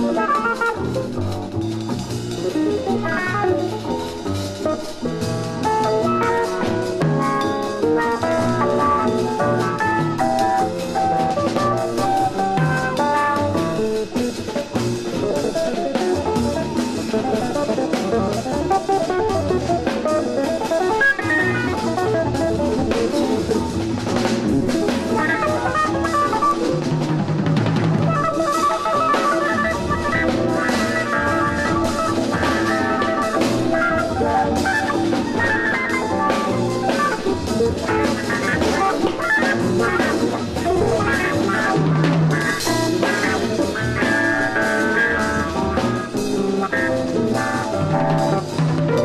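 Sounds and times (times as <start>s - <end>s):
drum kit and cymbals: 0.0s - 49.0s
small jazz group playing: 0.0s - 49.0s.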